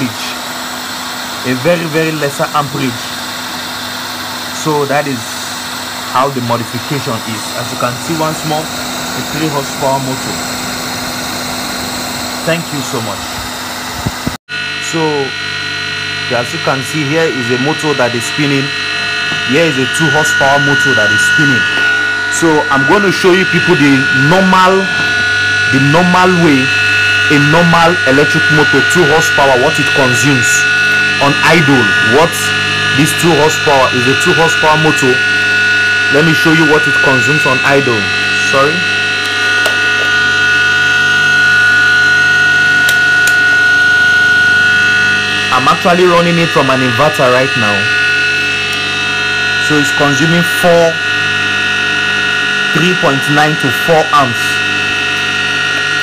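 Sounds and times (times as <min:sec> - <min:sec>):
electric motor humming and whining: 0:00.0 - 0:56.0
noisier motor running: 0:00.0 - 0:56.0.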